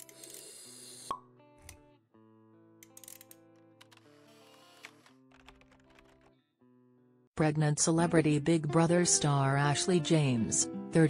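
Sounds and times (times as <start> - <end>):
background music: 1.1 - 11.0.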